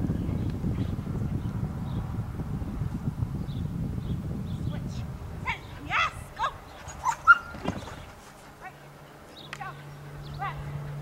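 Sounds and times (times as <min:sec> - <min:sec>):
dog barking short high yips: 0:06.9 - 0:07.6.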